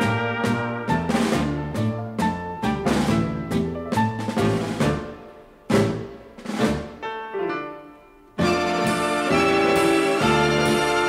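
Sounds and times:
dance orchestra playing tango chords: 0:00.0 - 0:11.0.

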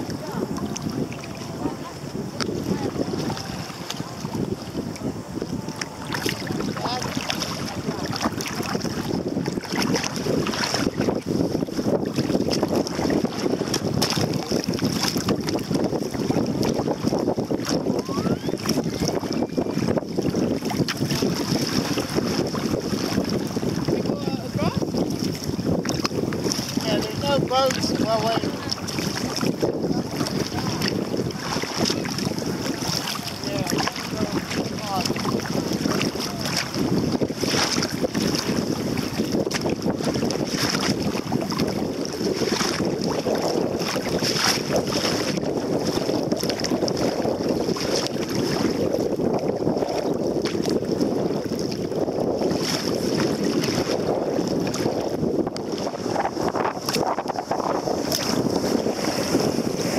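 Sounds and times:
paddle stroke splashes: 0:00.0 - 0:59.9
water slapping against hull: 0:00.0 - 0:59.9
wind buffeting microphone: 0:00.0 - 0:59.9.

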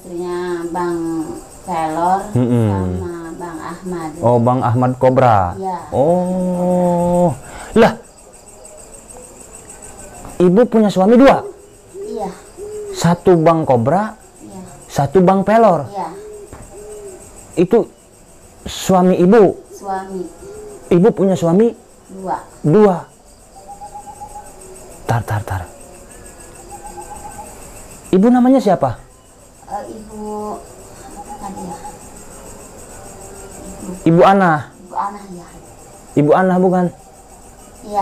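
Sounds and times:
crickets chirping: 0:00.0 - 0:38.0
night insect trill: 0:00.0 - 0:38.0
person talking: 0:00.1 - 0:08.0, 0:25.1 - 0:25.7
soft wavering call: 0:26.7 - 0:27.6.

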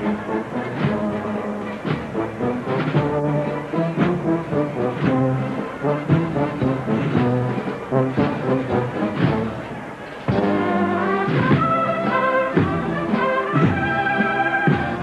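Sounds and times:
brass band playing a march: 0:00.0 - 0:15.0
drum strokes: 0:00.0 - 0:15.0.

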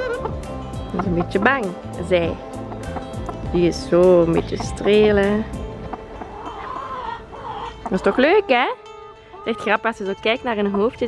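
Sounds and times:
hen clucking softly: 0:05.9 - 0:09.8.

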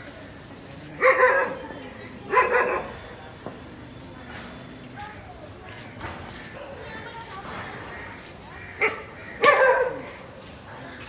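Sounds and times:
dog barking: 0:01.0 - 0:01.6, 0:02.3 - 0:03.0, 0:08.8 - 0:10.2.

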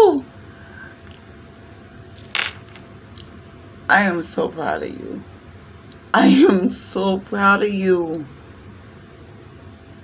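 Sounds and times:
woman speaking: 0:00.0 - 0:00.2, 0:03.9 - 0:05.2, 0:06.1 - 0:08.3
cards being shuffled: 0:02.3 - 0:02.8.

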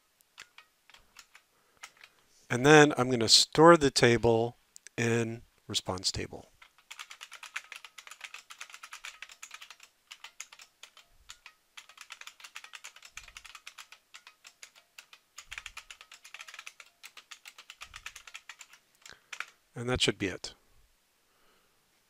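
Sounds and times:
fast typing on keyboard: 0:00.4 - 0:02.2, 0:06.6 - 0:19.6.

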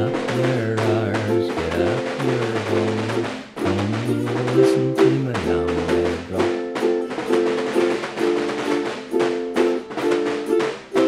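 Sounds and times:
drum beaten with canes: 0:00.0 - 0:11.0
ukulele tune: 0:00.0 - 0:11.0.

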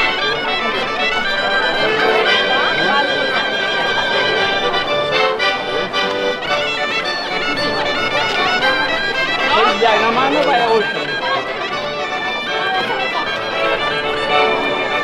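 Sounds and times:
crowd voices: 0:00.0 - 0:15.0
folk dance music with accordion: 0:00.0 - 0:15.0.

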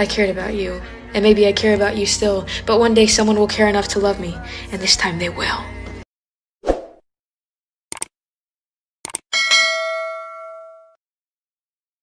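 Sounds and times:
mouse clicks: 0:07.9 - 0:08.1
bell ding: 0:09.3 - 0:11.0.

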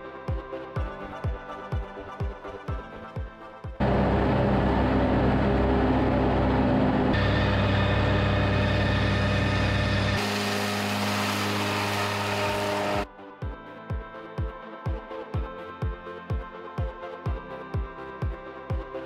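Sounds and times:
electronic music with a beat: 0:00.0 - 0:03.8, 0:13.0 - 0:19.0
tractor engine running under load: 0:03.8 - 0:13.0.

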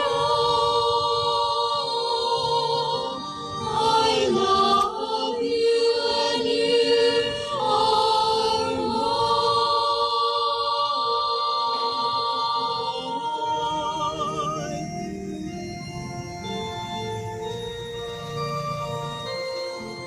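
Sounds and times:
church choir singing a hymn: 0:00.0 - 0:19.9.

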